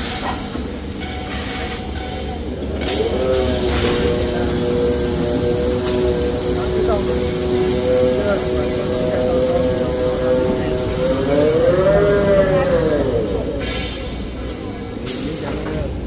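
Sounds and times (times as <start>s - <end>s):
machine humming with high whine: 0.8s - 16.0s.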